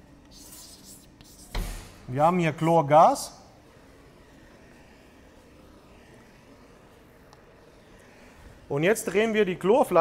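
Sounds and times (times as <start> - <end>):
chalk scratching on blackboard: 0.3 - 1.8.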